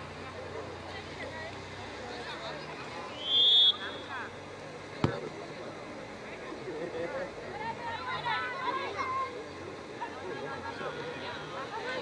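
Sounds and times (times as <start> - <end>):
players and spectators calling out: 3.1 - 4.4
referee's whistle blast: 3.2 - 4.2
football being kicked: 5.0 - 5.2.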